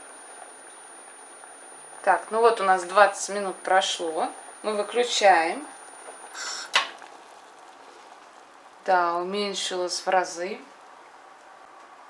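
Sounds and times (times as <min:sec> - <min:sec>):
gas burner hiss: 0:00.0 - 0:07.0.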